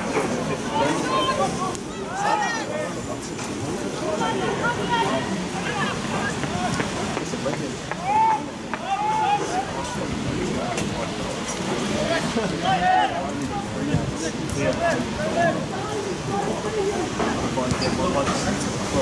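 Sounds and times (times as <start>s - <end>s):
voices talking over one another: 0.0s - 19.0s.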